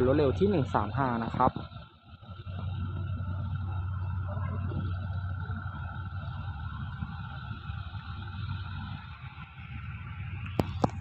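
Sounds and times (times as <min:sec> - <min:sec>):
diesel locomotive engine hum: 0:00.0 - 0:11.0.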